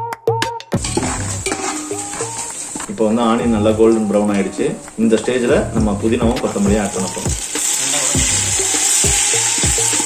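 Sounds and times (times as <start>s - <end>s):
metal ladle scraping pot: 0.8s - 5.3s
onions sizzling in oil: 0.8s - 10.0s.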